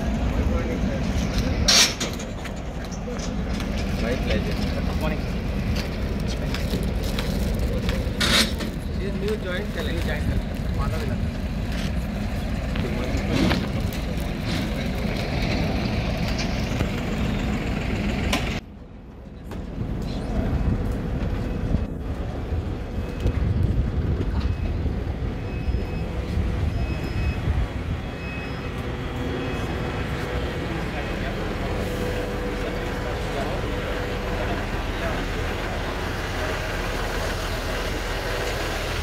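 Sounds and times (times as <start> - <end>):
indistinct voices talking: 0.0 - 18.6, 19.2 - 39.0
distant machinery: 0.0 - 39.0
low rumble of wind: 0.0 - 39.0.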